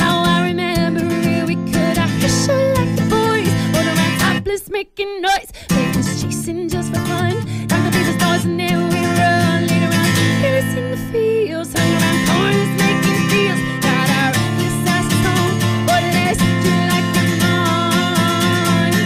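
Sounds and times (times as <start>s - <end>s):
acoustic guitar strumming: 0.0s - 4.4s, 5.7s - 19.0s
woman singing: 0.0s - 19.0s.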